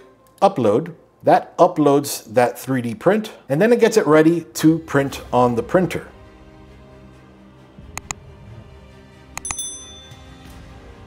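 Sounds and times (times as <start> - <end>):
soft background music: 0.0 - 11.0
mouse clicks: 7.9 - 8.2
bright bell ding: 9.4 - 10.5.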